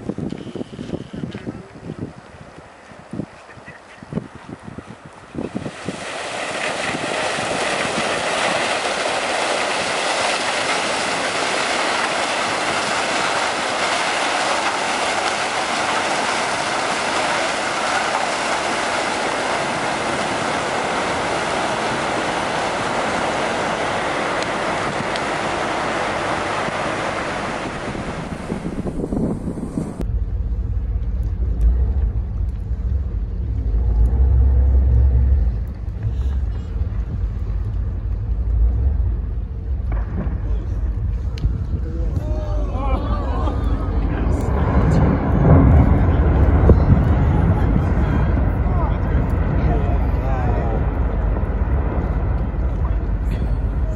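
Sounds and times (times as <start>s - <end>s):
deep low rumble: 0.9s - 53.9s.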